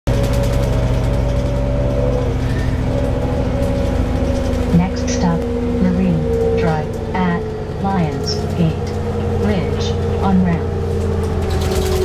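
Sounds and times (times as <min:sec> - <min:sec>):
bus engine and road noise: 0:00.0 - 0:12.0
humming note: 0:00.1 - 0:12.0
voices: 0:01.9 - 0:11.3.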